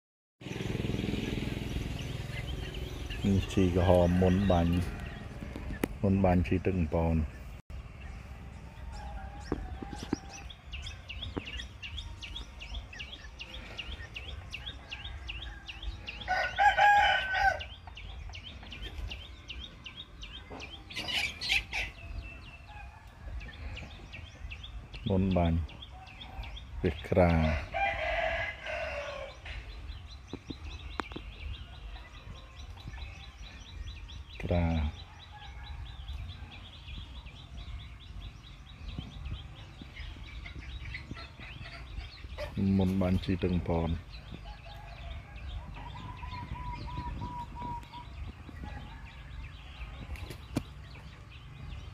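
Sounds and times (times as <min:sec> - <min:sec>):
rooster crowing: 0:08.8 - 0:10.6, 0:14.5 - 0:17.8, 0:27.4 - 0:29.5.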